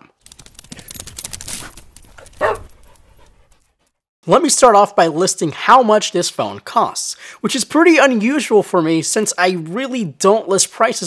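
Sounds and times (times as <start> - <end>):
dog bark: 2.4 - 2.7.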